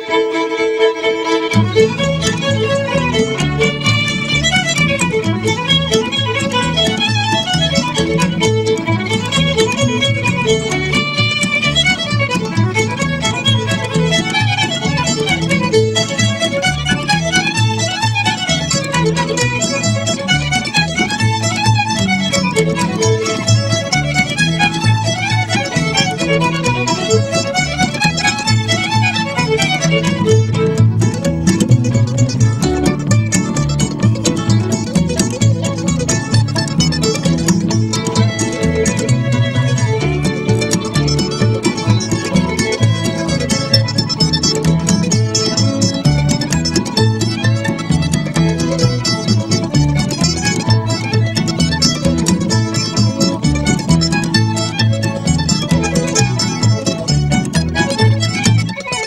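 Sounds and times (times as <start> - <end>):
fiddle playing bluegrass tune: 0.0 - 59.0
plucked strings: 0.0 - 59.0.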